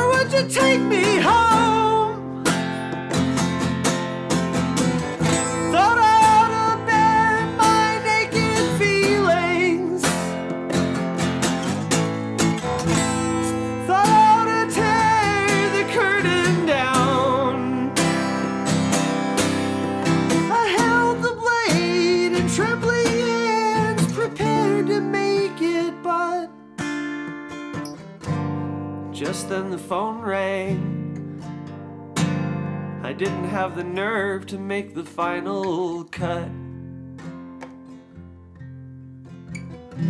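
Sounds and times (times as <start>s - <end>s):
man singing: 0.0s - 2.6s, 5.2s - 10.5s, 13.2s - 18.7s, 20.2s - 26.6s, 29.1s - 31.1s, 33.0s - 36.7s
acoustic guitar strummed: 0.0s - 40.0s.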